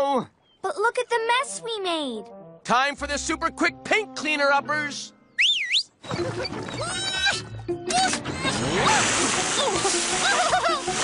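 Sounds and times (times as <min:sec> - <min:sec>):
squeaky gliding voices: 0:05.4 - 0:08.8
water spraying from hoses: 0:08.6 - 0:11.0.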